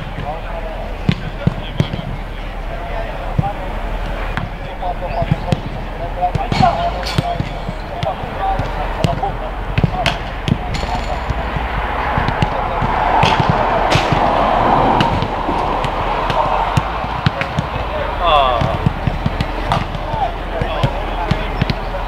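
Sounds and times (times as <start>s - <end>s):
distant players calling: 0.0s - 22.0s
footballs being kicked: 5.2s - 21.9s.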